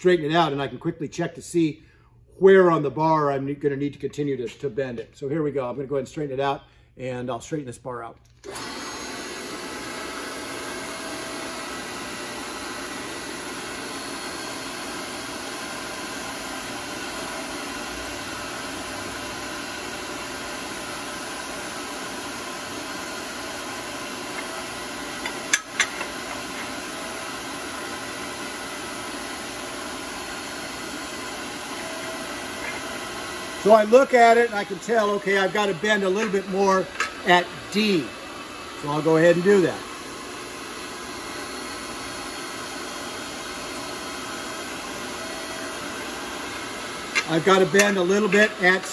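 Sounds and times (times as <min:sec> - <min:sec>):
electric motor and hydraulic pump: 0:08.4 - 0:48.9.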